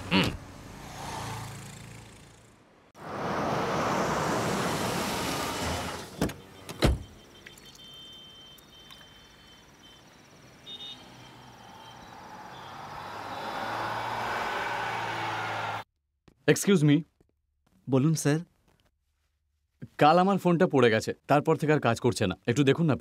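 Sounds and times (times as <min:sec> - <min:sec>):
car pulling up: 0:03.0 - 0:15.8.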